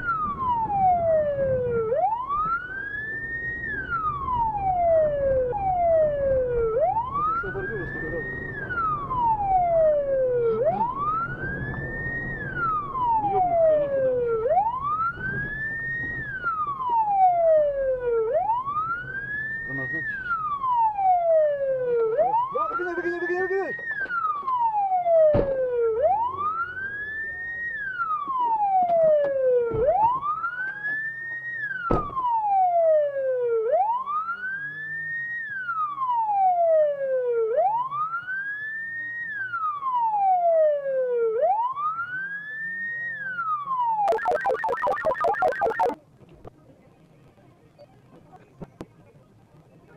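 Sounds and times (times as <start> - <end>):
police siren wailing: 0.0 - 31.6, 32.2 - 46.0.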